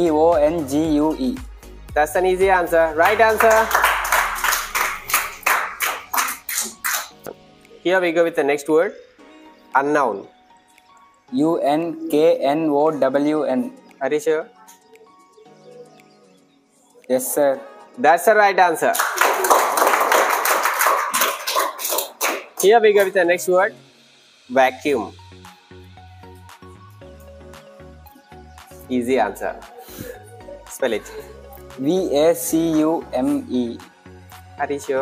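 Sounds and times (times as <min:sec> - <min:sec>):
hands clapping in applause: 0:03.0 - 0:07.3, 0:18.8 - 0:23.1.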